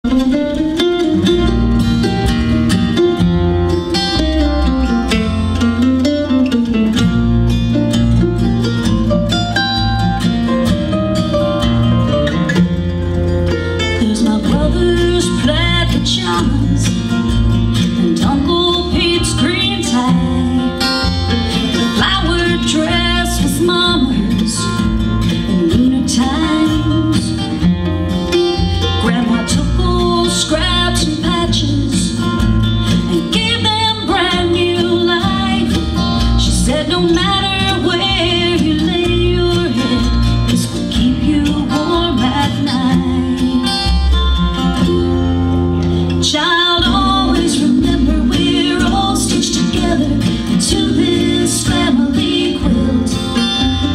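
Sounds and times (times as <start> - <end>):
acoustic guitars: 0.0 - 53.9
mandolin: 0.0 - 53.9
upright bass: 0.0 - 53.9
woman singing: 13.8 - 27.9, 28.8 - 45.1, 46.1 - 53.9.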